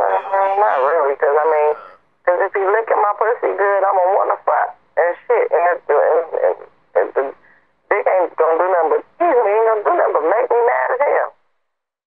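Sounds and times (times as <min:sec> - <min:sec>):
person speaking telephone-like voice: 0:00.0 - 0:02.0.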